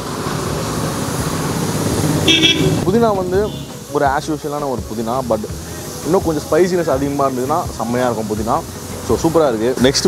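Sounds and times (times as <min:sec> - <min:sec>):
street traffic noise: 0:00.0 - 0:10.0
vehicle horn toot: 0:02.2 - 0:03.8.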